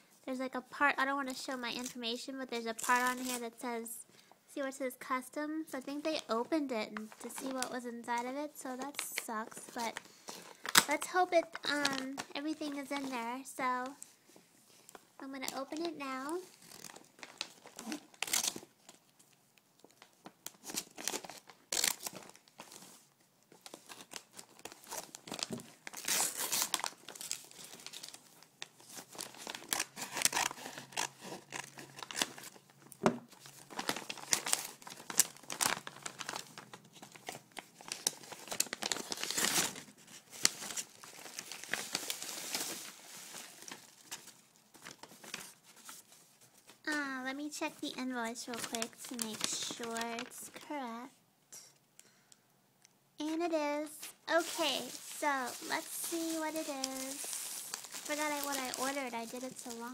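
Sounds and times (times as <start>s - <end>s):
package wrapping tearing: 10.3s - 12.2s, 16.3s - 19.0s, 20.0s - 22.9s, 23.6s - 32.7s, 33.3s - 46.0s, 48.6s - 50.6s, 54.3s - 59.9s.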